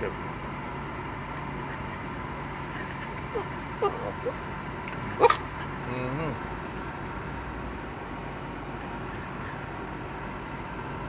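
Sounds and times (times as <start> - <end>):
car interior hum: 0.0 - 11.0
small dog yipping: 2.7 - 4.4, 5.2 - 5.4.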